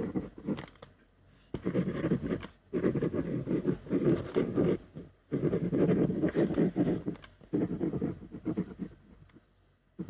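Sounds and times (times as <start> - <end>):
ballpoint pen scratching on paper: 0.0 - 0.8, 1.5 - 9.5.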